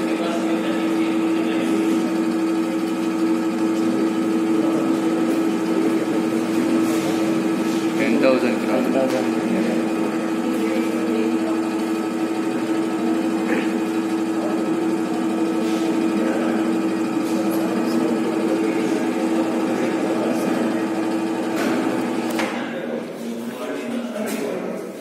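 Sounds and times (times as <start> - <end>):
hydraulic pump humming: 0.0 - 23.3.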